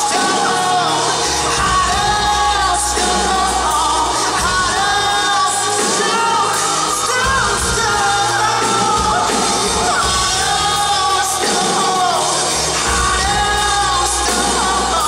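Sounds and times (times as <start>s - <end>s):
keyboards and drums: 0.0s - 15.0s
man singing into microphone: 0.0s - 15.0s.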